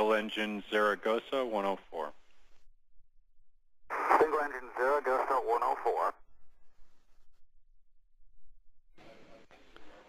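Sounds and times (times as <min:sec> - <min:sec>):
faint broadcast hiss: 0:03.9 - 0:06.2.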